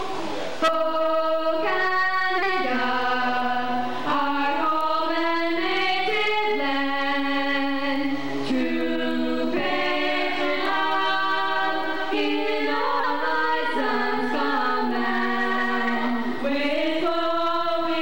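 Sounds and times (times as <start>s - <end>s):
children singing in harmony: 0.0s - 18.0s.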